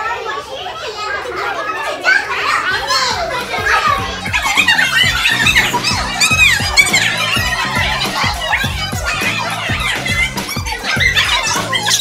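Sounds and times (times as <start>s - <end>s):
children talking over one another: 0.0s - 12.0s
background music with steady beat: 3.0s - 12.0s.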